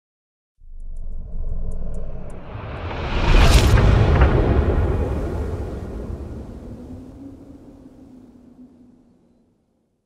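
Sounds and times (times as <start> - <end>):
low rumbling whoosh: 0.6 - 9.2.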